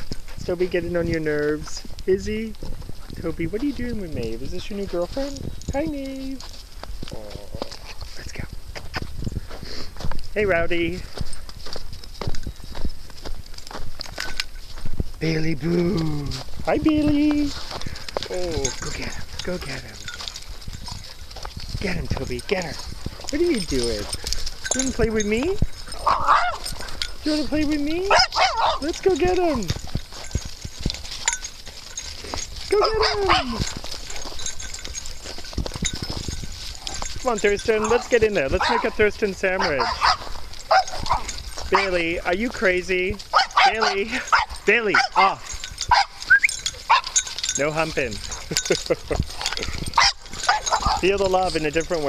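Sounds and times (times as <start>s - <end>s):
footsteps in snow: 0.0s - 52.0s.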